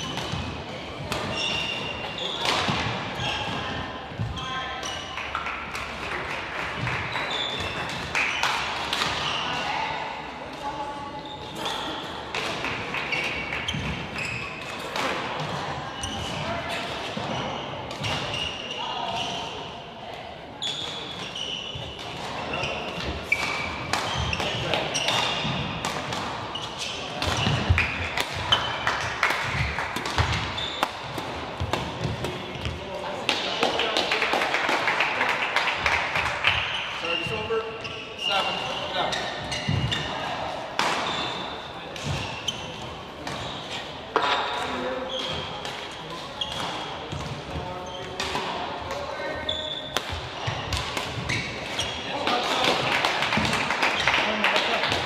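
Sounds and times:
footfalls and shoe squeaks: 0.0 - 5.1, 7.1 - 8.5, 13.1 - 14.8, 15.8 - 19.5, 20.6 - 25.8, 29.5 - 32.8, 36.5 - 52.2
racket striking shuttlecock: 49.9 - 51.8.

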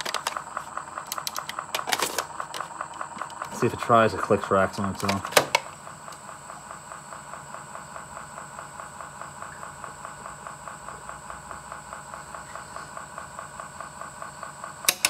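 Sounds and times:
tape deck mechanism click: 0.0 - 3.7, 4.8 - 6.2
tape deck motor whirring: 0.0 - 15.0.

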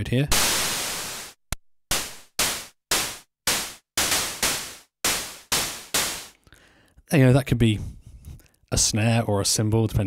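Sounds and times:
synthesizer noise hits: 0.3 - 6.3.

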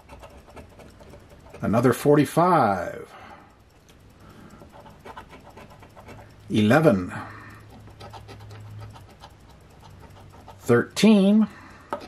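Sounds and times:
scratcher rubbing lottery ticket: 0.0 - 2.3, 4.6 - 11.1.

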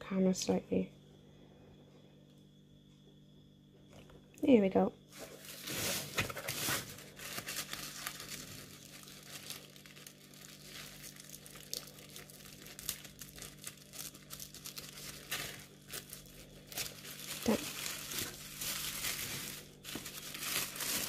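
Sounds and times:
faint low hum: 0.0 - 21.0
tissue paper crinkling: 5.1 - 21.0.

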